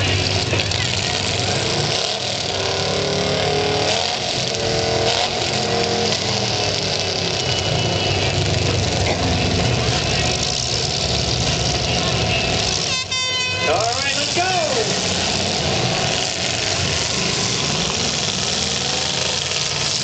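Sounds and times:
car engines revving: 0.0s - 20.0s.

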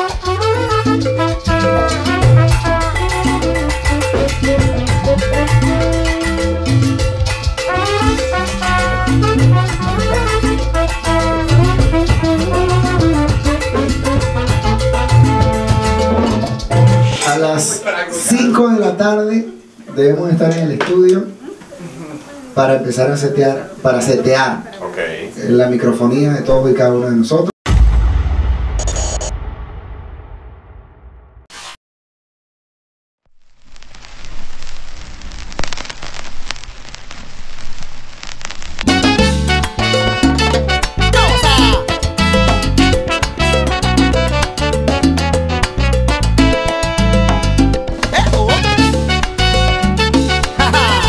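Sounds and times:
held brass notes: 0.0s - 17.4s, 38.9s - 51.0s
salsa band music: 0.0s - 18.6s, 38.8s - 51.0s
steady crackling noise: 33.2s - 40.4s.

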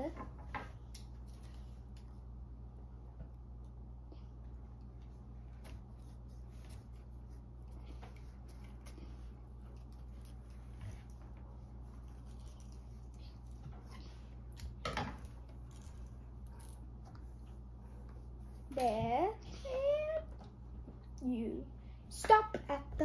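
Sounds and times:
low room hum: 0.0s - 23.0s.

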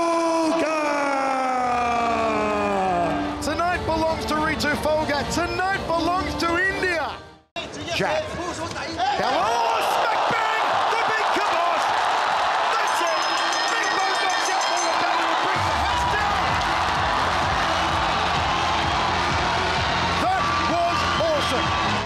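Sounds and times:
crowd cheering and shouting: 0.0s - 3.4s, 8.9s - 22.0s.

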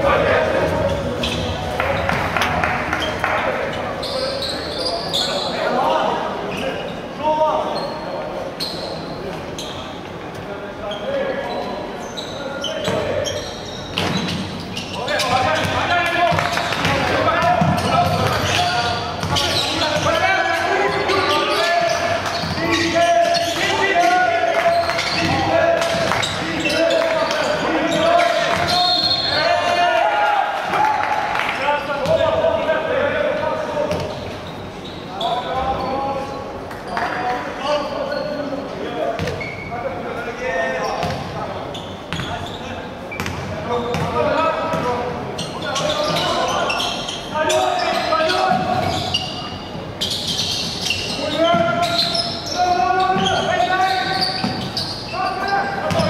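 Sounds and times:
voices echoing in hall: 0.0s - 56.0s.

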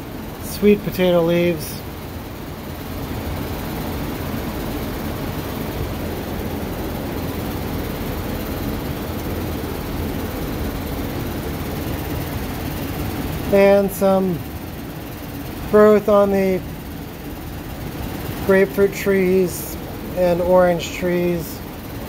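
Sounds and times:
machinery droning: 0.0s - 22.0s.

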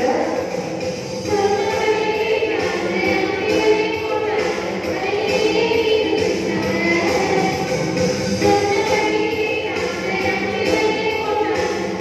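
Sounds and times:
music: 0.0s - 12.0s
group singing children's song: 1.2s - 12.0s.

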